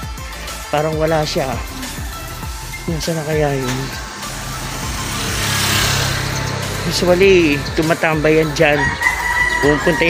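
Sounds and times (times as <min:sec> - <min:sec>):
motorcycle passing: 0:00.5 - 0:10.0.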